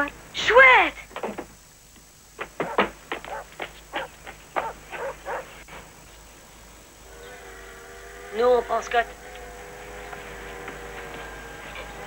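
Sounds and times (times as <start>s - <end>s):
dog barking: 2.6s - 5.6s.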